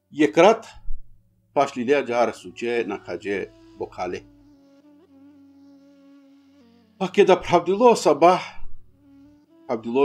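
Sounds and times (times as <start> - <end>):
man speaking: 0.1 - 0.8, 1.6 - 4.3, 7.0 - 8.6, 9.7 - 10.0
soft flute music: 2.0 - 7.1, 8.8 - 10.0.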